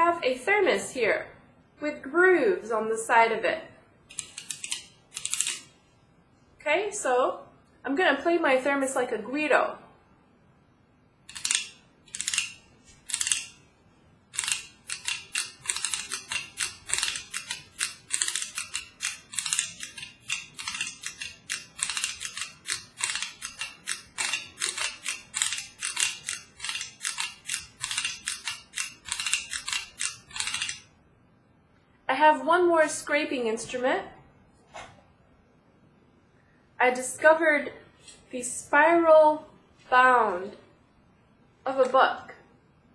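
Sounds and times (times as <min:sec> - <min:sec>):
fork scraping metal grooves: 0:14.4 - 0:30.8.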